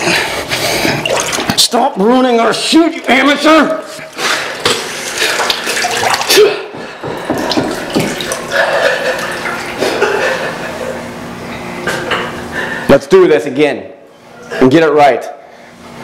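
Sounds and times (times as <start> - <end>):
water churning in whirlpool tub: 0.0 - 11.4
man laughing: 8.6 - 11.1.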